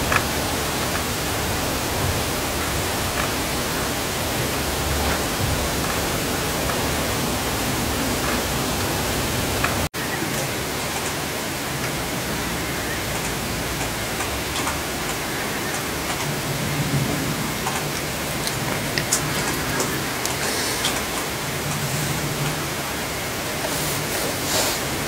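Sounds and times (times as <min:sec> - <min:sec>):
steady rushing hiss: 0:00.0 - 0:25.0.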